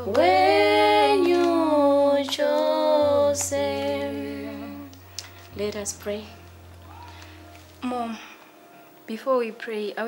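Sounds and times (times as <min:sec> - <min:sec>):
woman singing long note: 0:00.0 - 0:05.0
faint low hum: 0:00.0 - 0:10.0.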